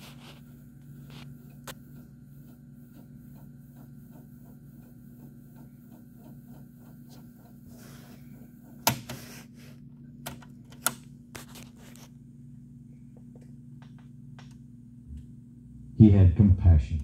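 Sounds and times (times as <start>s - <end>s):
low steady hum: 0.0s - 17.0s.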